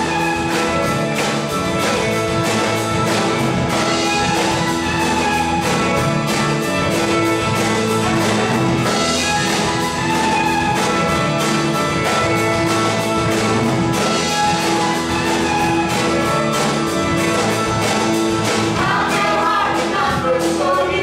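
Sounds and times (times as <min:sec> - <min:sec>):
fiddle: 0:00.0 - 0:19.6
acoustic guitar: 0:00.0 - 0:21.0
drum kit steady beat: 0:00.0 - 0:21.0
electric bass: 0:00.0 - 0:21.0.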